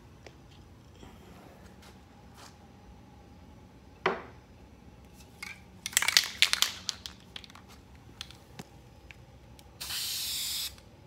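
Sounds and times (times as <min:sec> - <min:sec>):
can clicking and rattling: 0:05.8 - 0:07.6
spray paint can hissing: 0:09.8 - 0:10.8.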